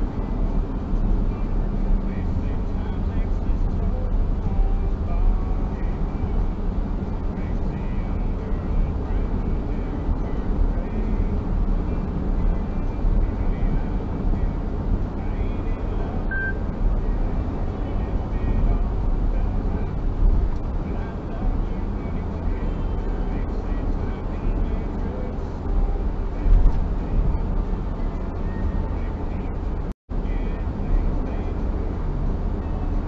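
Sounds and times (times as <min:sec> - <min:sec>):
car tyres and engine rumble: 0:00.0 - 0:33.0.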